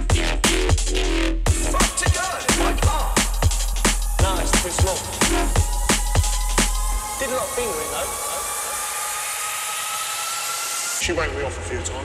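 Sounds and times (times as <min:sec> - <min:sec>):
drum and bass beat: 0:00.0 - 0:11.0
vocal: 0:01.5 - 0:08.8.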